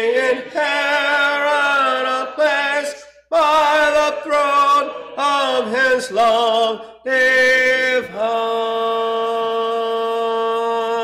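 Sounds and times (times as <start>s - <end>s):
man singing a hymn: 0.0s - 11.0s.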